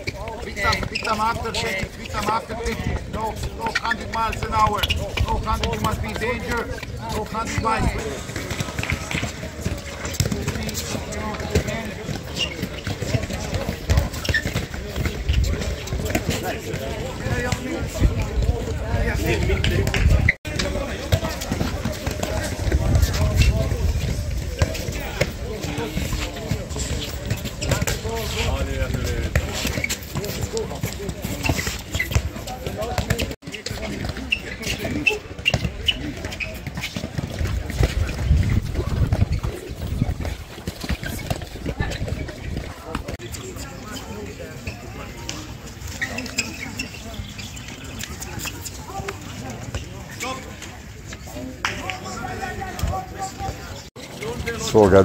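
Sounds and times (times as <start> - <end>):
players' voices: 0.0 - 55.0
wind on microphone: 37.6 - 42.7.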